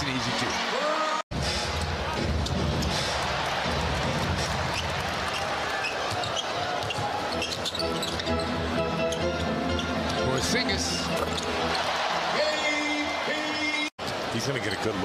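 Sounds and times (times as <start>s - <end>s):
crowd noise: 0.0s - 15.0s
basketball bouncing on court: 4.7s - 7.8s
music playing: 7.0s - 13.9s.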